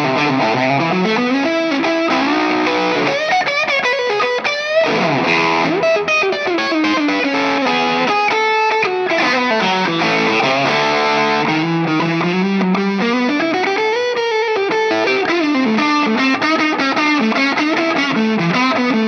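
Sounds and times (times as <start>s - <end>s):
electric guitar lead line: 0.0s - 19.0s.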